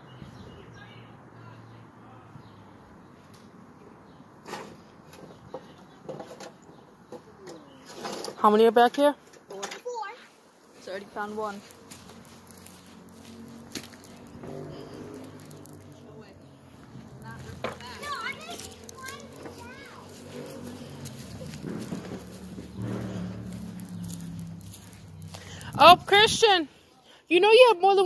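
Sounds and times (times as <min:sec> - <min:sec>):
distant people calling and talking: 0:00.0 - 0:28.0.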